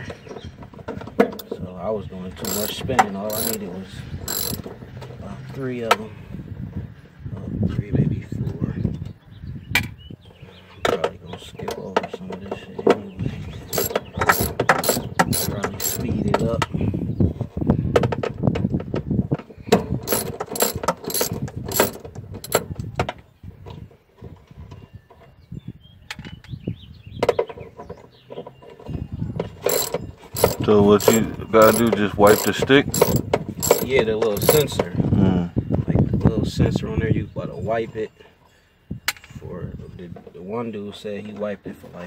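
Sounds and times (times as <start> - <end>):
ratchet wrench clicking: 2.4 - 3.6, 4.2 - 4.7, 13.7 - 16.1, 20.0 - 22.6, 29.6 - 34.8.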